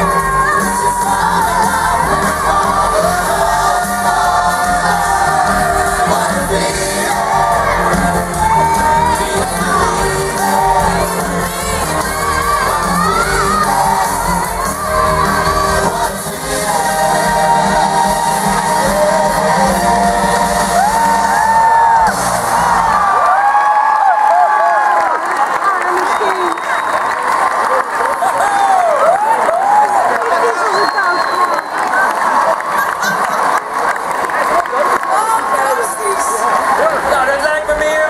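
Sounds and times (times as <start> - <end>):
live band playing: 0.0 - 23.1
audience cheering and whooping: 0.0 - 37.4.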